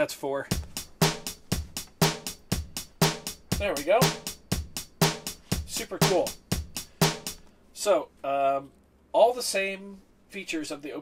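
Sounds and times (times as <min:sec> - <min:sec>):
snare drum: 0:00.5 - 0:07.4
bass drum: 0:00.5 - 0:07.5
hi-hat: 0:00.5 - 0:07.5.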